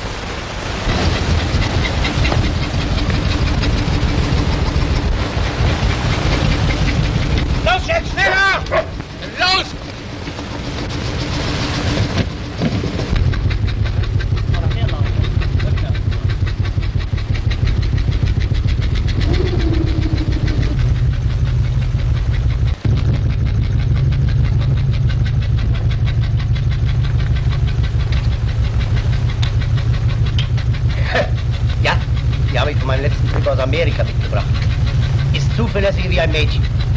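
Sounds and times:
small motorboat engine running: 0.0s - 36.9s.

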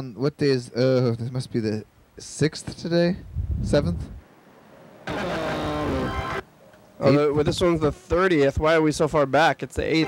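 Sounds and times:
tape hiss with falling tone: 5.0s - 7.3s.

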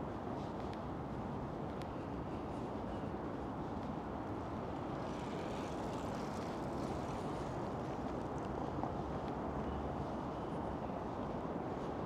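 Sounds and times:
low outdoor background noise: 0.0s - 12.0s.

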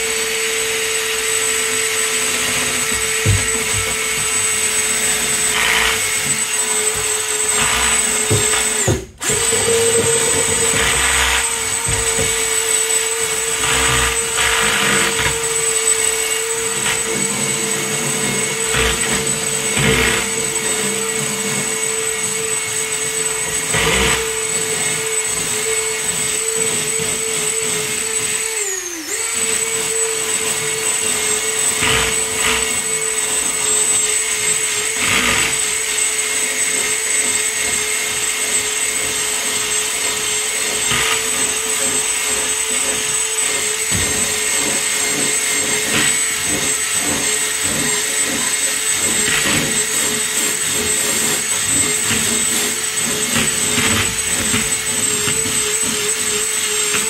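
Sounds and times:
drill wire brush grinding rust: 0.0s - 57.0s.

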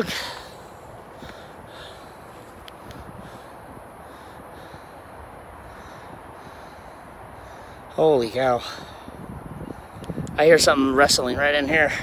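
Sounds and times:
steady low hiss: 0.0s - 12.0s
footsteps on woodland trail: 0.2s - 3.4s.

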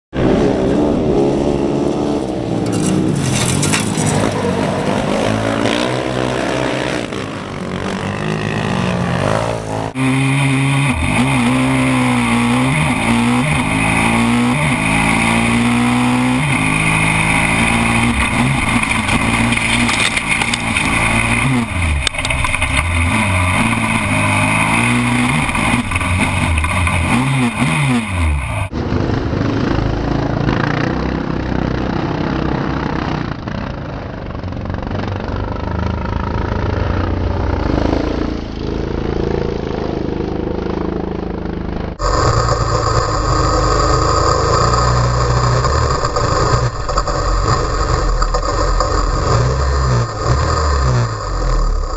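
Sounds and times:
dull rough engine noise: 0.1s - 51.9s
kart engine revving: 0.2s - 51.9s
passing kart engines: 0.2s - 51.9s.

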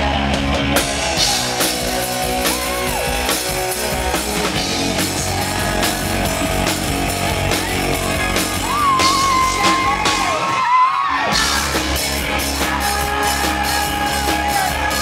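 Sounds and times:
rock band playing live: 0.0s - 15.0s.

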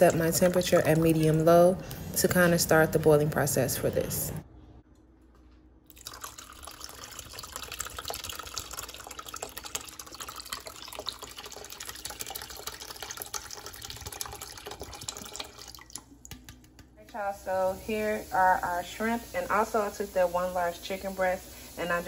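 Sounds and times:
liquid pouring into saucepan: 5.9s - 16.5s.

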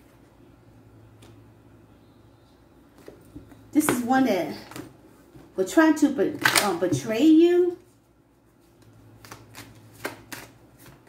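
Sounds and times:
cards being shuffled: 8.6s - 11.0s.

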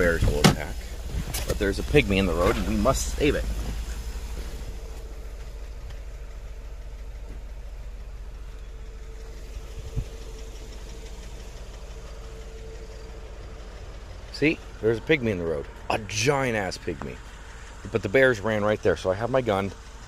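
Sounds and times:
car engine idling: 0.0s - 20.0s
thump: 0.2s - 1.5s.

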